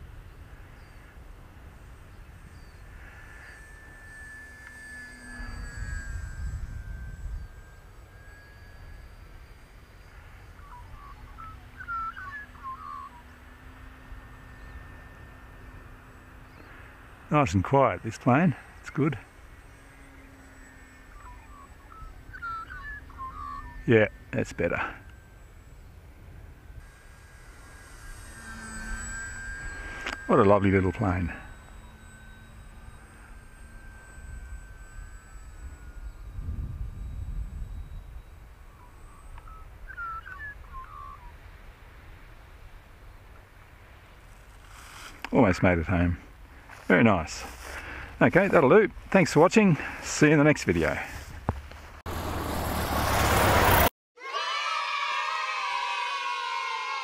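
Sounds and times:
wind rumbling on microphone: 0.0 - 20.3, 21.1 - 50.0
model plane motor humming: 0.0 - 53.9
bird chirps: 0.2 - 42.2.

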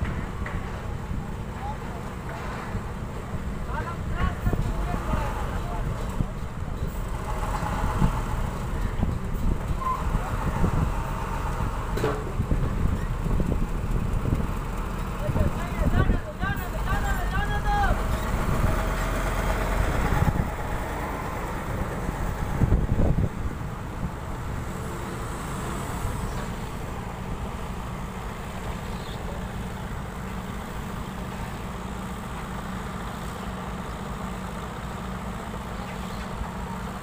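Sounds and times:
diesel truck engine running: 0.0 - 37.0.

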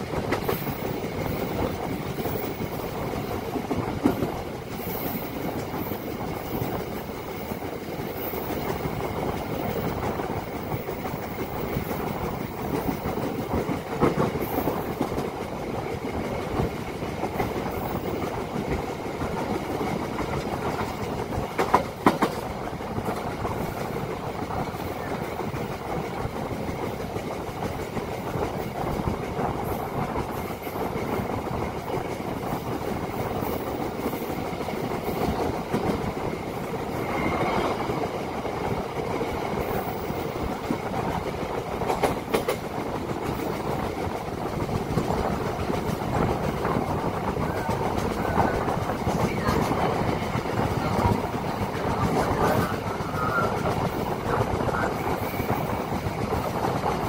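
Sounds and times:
train wheels rumbling on rails: 0.0 - 57.0.

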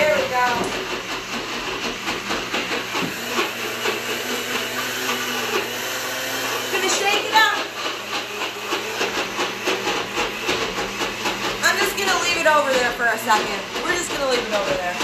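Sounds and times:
blender motor grinding: 0.0 - 15.0.

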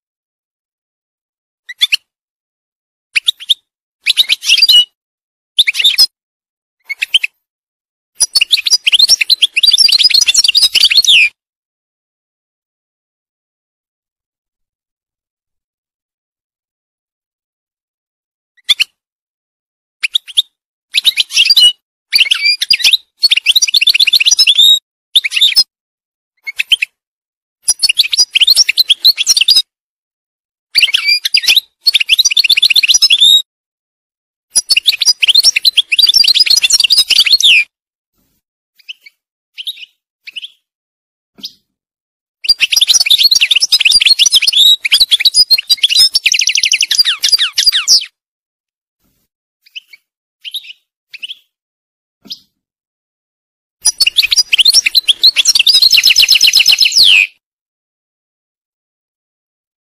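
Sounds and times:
goldfinch twittering song: 8.2 - 11.4, 20.0 - 25.7, 27.6 - 29.6, 30.8 - 33.5, 34.5 - 37.7, 38.8 - 40.7, 42.4 - 48.2, 49.6 - 51.6, 53.8 - 57.4.

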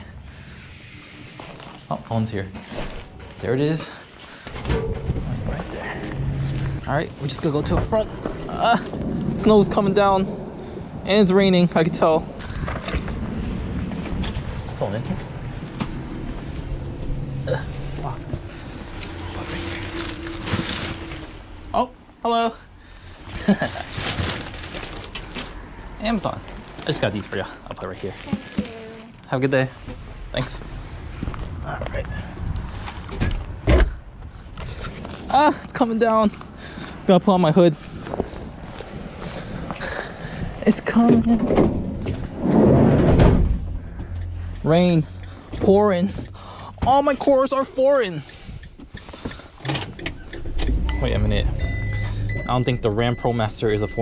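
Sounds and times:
steady background rumble: 0.0 - 54.0
jacket and packages rustling: 1.0 - 4.5, 18.1 - 21.7, 23.0 - 31.6.

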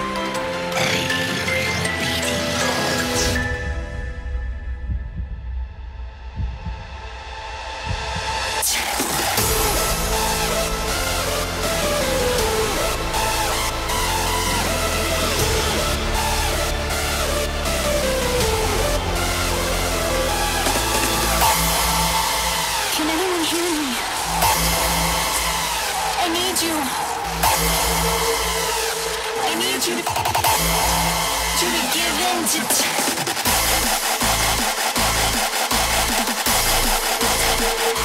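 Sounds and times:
sustained bass: 4.8 - 29.5
distorted kick drum beat: 4.9 - 38.0.

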